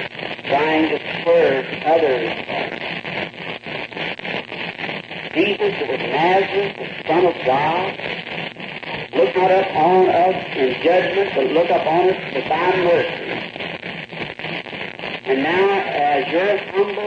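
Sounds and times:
recording hiss: 0.0s - 17.0s
man praying aloud: 15.3s - 17.0s.

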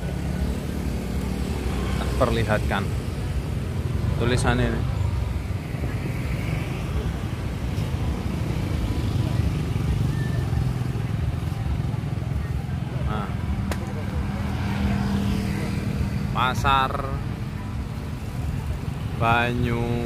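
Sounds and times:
motorbike engines: 0.0s - 20.0s
steady engine hum: 0.0s - 20.0s
street traffic rumble: 0.0s - 20.0s.

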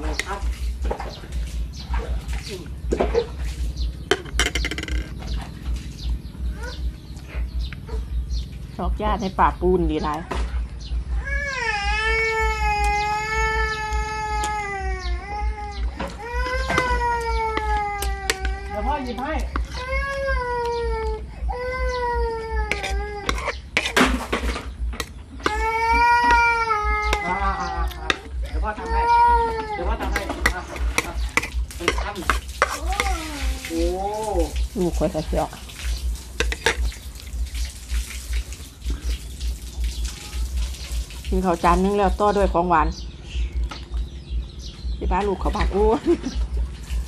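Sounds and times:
birds chirping: 0.0s - 47.0s
bird trill: 1.0s - 10.1s.

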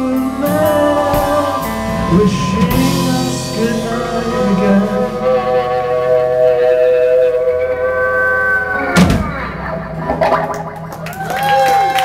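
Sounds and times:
electric guitars sustained chord: 0.0s - 11.1s.

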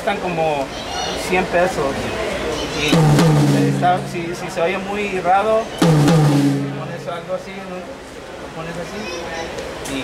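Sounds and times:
tom drum struck and ringing: 2.9s - 4.9s, 5.8s - 7.5s.

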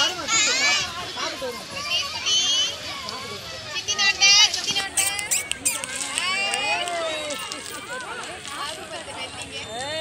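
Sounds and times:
children and adults chattering: 0.0s - 10.0s
loud high-pitched squeal: 4.9s - 6.0s.

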